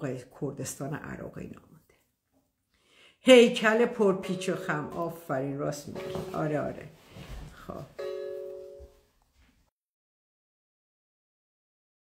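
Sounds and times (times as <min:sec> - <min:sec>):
two-note chime: 0:08.0 - 0:09.0.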